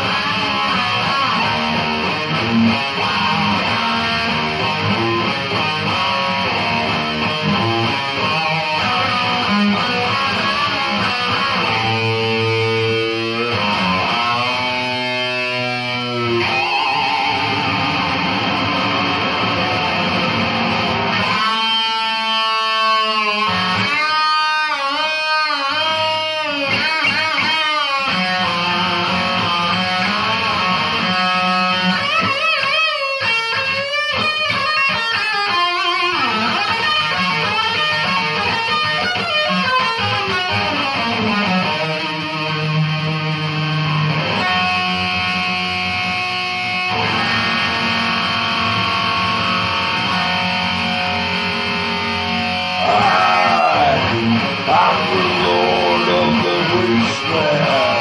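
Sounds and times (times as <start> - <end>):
distorted electric guitar solo: 0.0 - 58.0.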